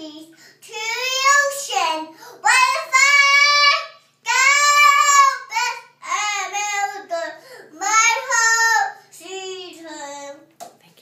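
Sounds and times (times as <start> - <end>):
girl singing: 0.0 - 10.6
breath: 0.3 - 0.6, 2.1 - 2.4, 7.4 - 7.7.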